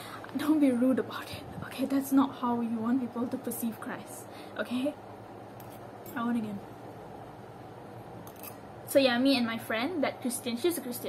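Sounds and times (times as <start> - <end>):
woman speaking: 0.3 - 5.0, 6.1 - 6.7, 8.9 - 11.0.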